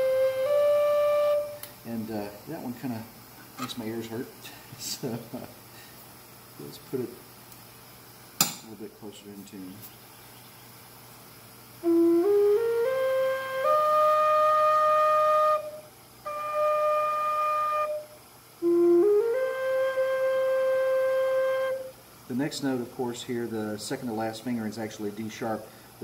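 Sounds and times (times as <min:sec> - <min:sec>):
flute notes: 0:00.0 - 0:01.7, 0:11.8 - 0:22.0.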